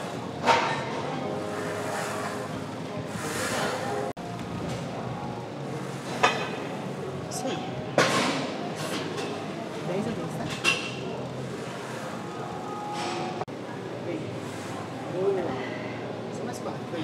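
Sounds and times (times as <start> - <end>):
gym background noise: 0.0 - 17.0.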